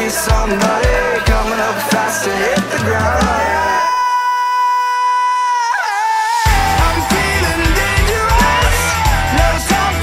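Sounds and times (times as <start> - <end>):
rock band playing: 0.0 - 3.9, 6.4 - 10.0.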